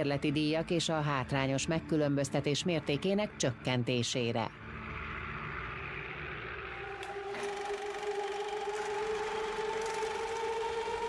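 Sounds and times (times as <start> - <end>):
sustained two-tone drone: 0.0 - 11.0.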